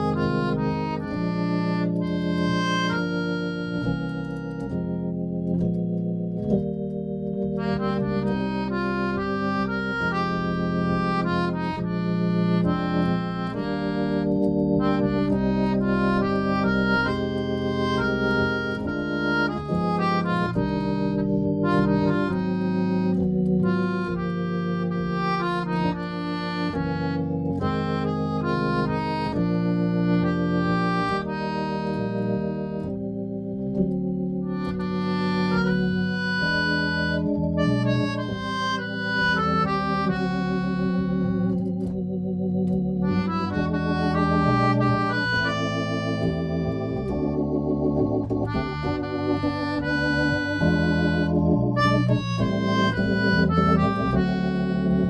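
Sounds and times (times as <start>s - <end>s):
keyboard harmonica melody: 0.0s - 55.0s
organ chords: 0.0s - 55.0s.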